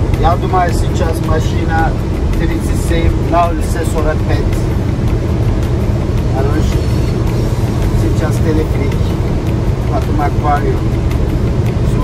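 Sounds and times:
van road and engine rumble: 0:00.0 - 0:12.0.

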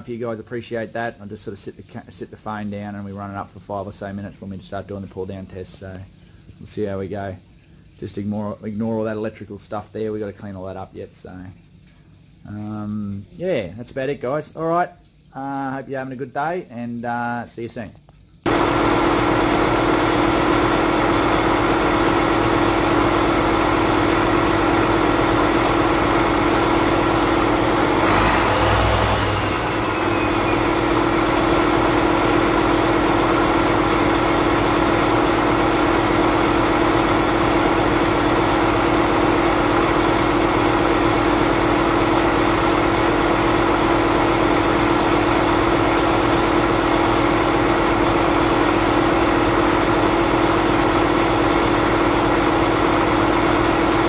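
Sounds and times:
diesel engine running: 0:18.5 - 0:54.0.

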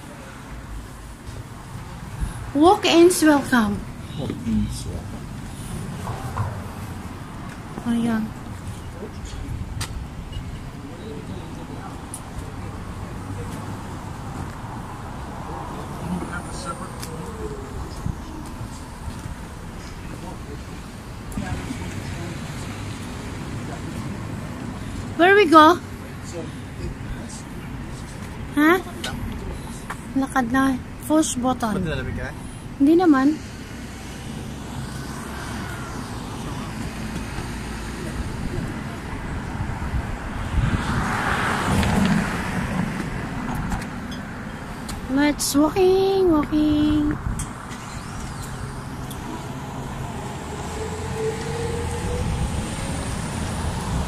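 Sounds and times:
faint distant voices: 0:00.0 - 0:30.2
road traffic rumble: 0:00.0 - 0:54.0
vehicle passing close by: 0:01.2 - 0:26.5, 0:33.4 - 0:45.5, 0:46.2 - 0:54.0.

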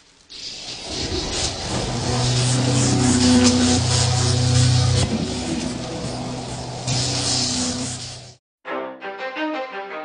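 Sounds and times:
rising noisy rush: 0:00.6 - 0:08.4
steady low droning tone: 0:01.7 - 0:07.9.

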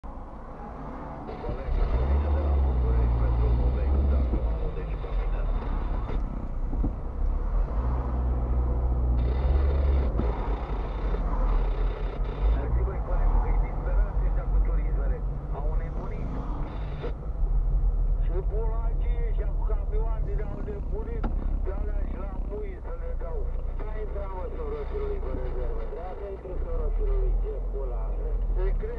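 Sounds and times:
car engine and road rumble: 0:00.0 - 0:28.9
indistinct talking: 0:01.3 - 0:06.6, 0:18.2 - 0:28.9.

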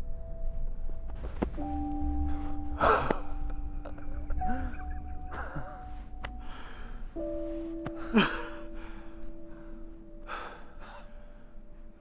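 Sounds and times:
soft music with held notes: 0:00.0 - 0:12.0
men gasping and laughing: 0:02.3 - 0:07.2, 0:07.8 - 0:10.8.

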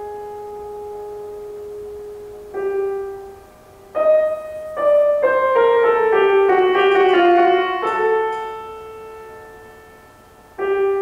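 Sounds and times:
piano notes ringing: 0:00.0 - 0:11.0.

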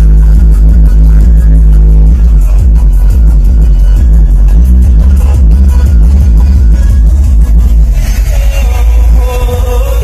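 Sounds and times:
bass-heavy music: 0:00.0 - 0:10.0.

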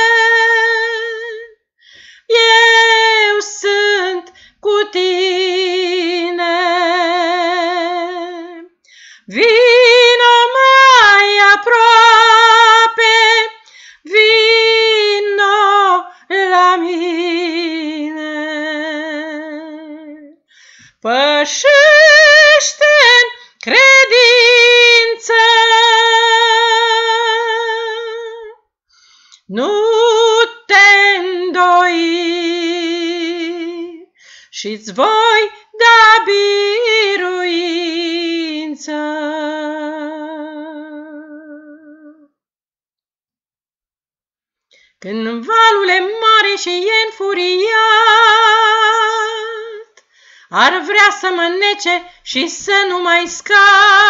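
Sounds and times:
woman singing a hymn: 0:00.0 - 0:01.6, 0:02.2 - 0:20.4, 0:21.0 - 0:28.6, 0:29.5 - 0:42.2, 0:45.0 - 0:54.0.

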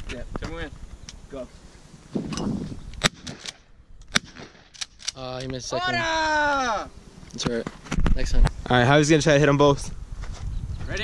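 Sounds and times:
shotgun shots: 0:03.0 - 0:05.0.

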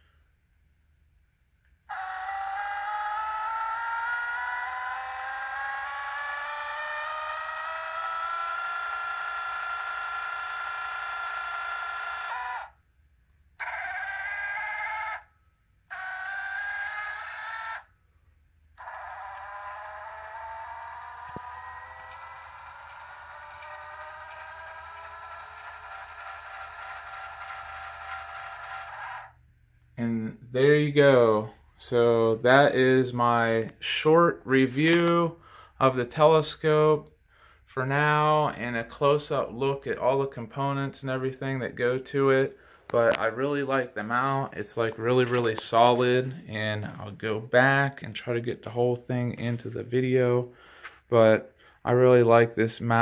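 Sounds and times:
motor whining: 0:01.9 - 0:12.8, 0:13.6 - 0:15.3, 0:15.9 - 0:18.0, 0:18.7 - 0:29.4.

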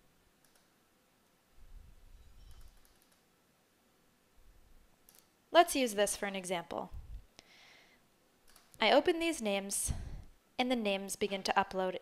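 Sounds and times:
faint computer mouse clicks: 0:00.4 - 0:00.7, 0:05.0 - 0:05.3, 0:08.5 - 0:08.8
faint low rumble: 0:01.4 - 0:02.8, 0:06.6 - 0:07.4.

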